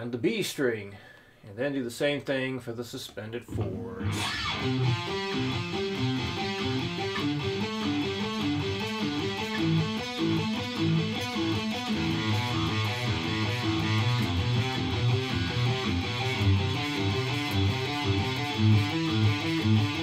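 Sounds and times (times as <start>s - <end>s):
electric guitar arpeggios: 3.5s - 20.0s.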